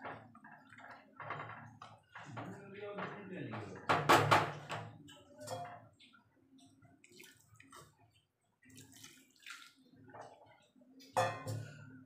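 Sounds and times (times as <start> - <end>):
curry bubbling in pot: 0.0 - 2.7.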